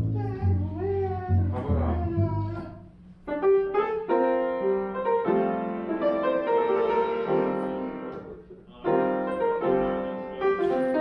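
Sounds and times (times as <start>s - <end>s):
double bass playing low notes: 0.0s - 3.0s.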